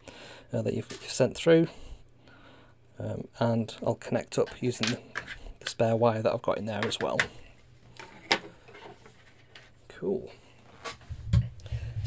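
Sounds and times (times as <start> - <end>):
person speaking: 3.0 - 7.4.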